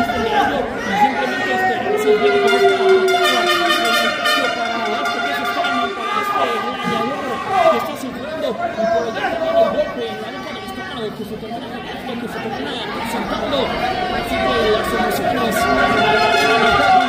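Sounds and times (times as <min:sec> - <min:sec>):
crowd shouting and chattering: 0:00.0 - 0:17.0.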